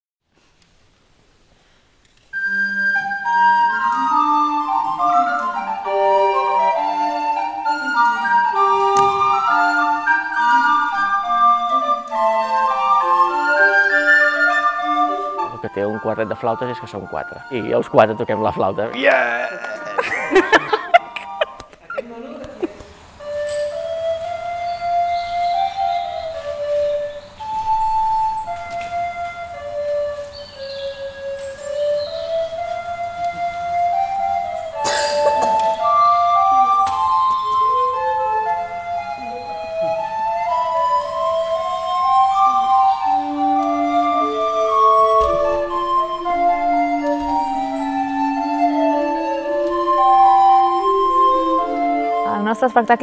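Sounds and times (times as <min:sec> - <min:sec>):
recorders playing melody: 0:02.3 - 0:22.2, 0:23.1 - 0:53.0.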